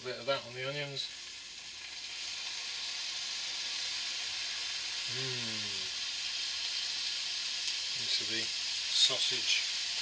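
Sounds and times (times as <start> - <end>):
food sizzling in a frying pan: 0.0 - 10.0.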